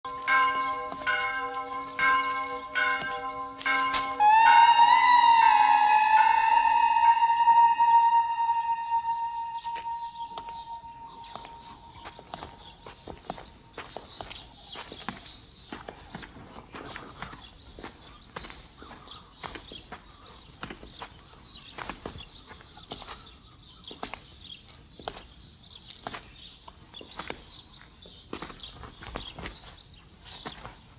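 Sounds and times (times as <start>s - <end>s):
footsteps on stone floor: 0.0s - 7.0s, 8.3s - 30.9s
bell tolling: 0.0s - 12.8s.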